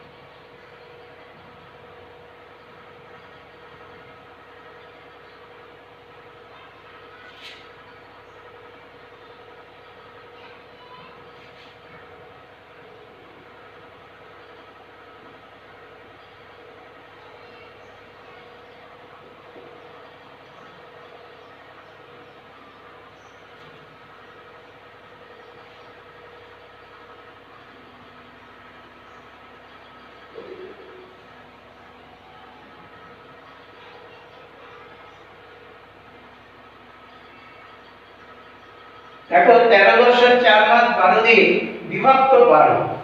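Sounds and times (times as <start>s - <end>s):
room noise hum: 0.0s - 43.0s.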